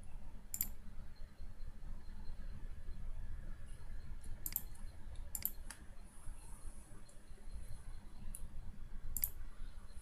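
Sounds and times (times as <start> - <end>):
steady low hum: 0.0 - 10.0
computer mouse clicks: 0.5 - 0.8, 4.2 - 5.8, 9.1 - 9.4.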